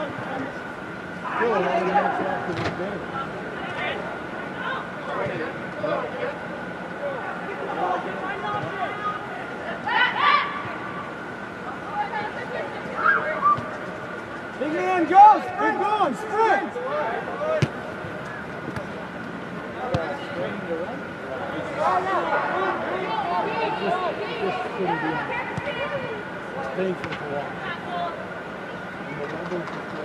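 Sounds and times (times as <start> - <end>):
players shouting and calling: 0.0 - 30.0.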